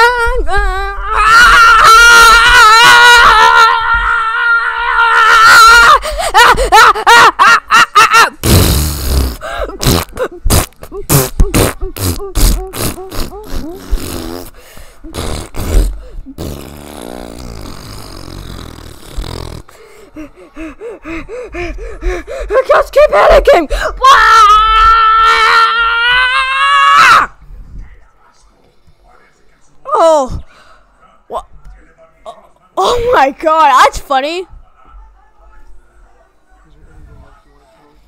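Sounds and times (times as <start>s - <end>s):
high-pitched voice screaming: 0.0s - 6.0s.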